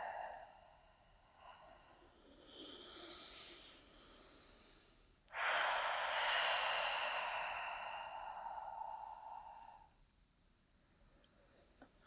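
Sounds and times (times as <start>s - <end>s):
long breathy hiss: 0.0s - 10.0s.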